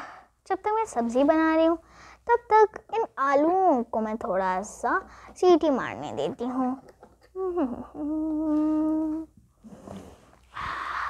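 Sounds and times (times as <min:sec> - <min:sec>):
person humming: 0:07.3 - 0:11.0.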